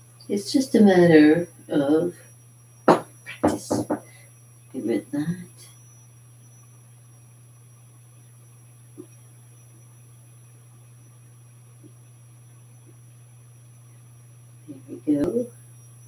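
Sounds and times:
faint high whine: 0.0 - 16.0
low electrical hum: 0.0 - 16.0.

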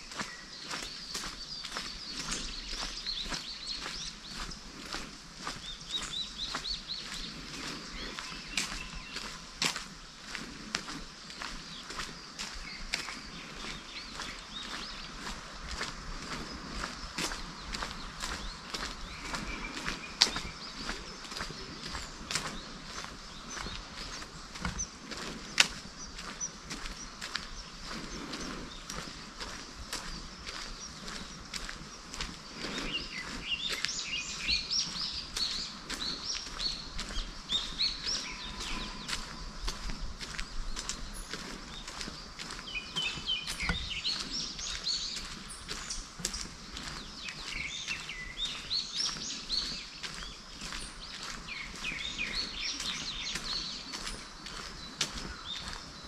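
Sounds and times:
footsteps on paved path: 0.0 - 56.0
small birds chirping and trilling: 0.0 - 56.0.

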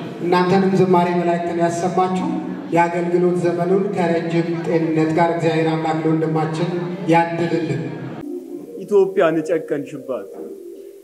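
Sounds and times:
man speaking: 8.8 - 10.4.

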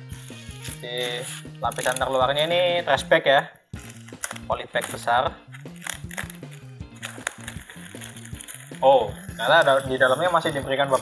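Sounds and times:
background music with bass line: 0.0 - 3.2, 3.8 - 11.0
plastic bag rustling and crinkling: 3.8 - 11.0.

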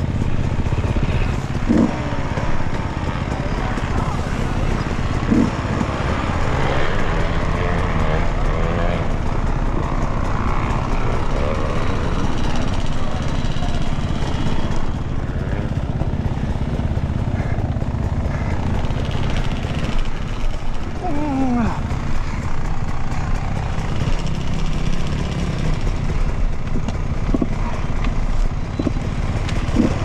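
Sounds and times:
dirt bike engine running: 0.0 - 30.0.

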